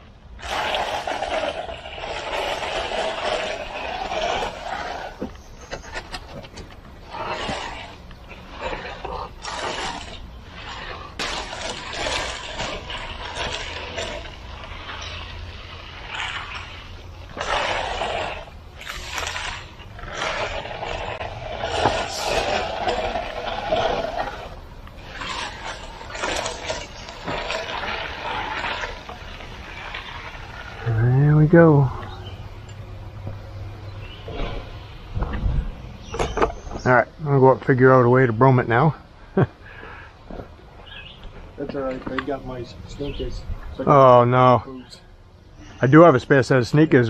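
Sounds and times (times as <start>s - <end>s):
tool scraping wet concrete: 0.0s - 32.9s, 34.0s - 35.4s, 36.0s - 36.9s.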